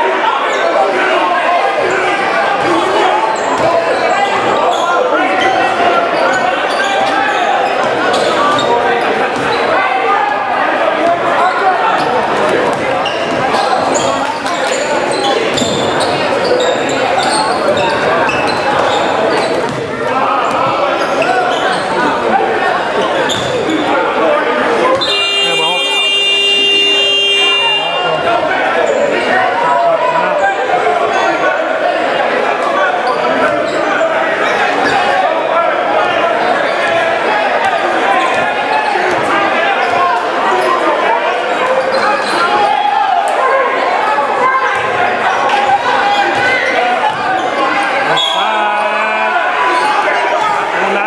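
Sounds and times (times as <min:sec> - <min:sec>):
voices echoing in gym: 0:00.0 - 0:51.0
basketball bouncing on hardwood court: 0:19.6 - 0:19.9.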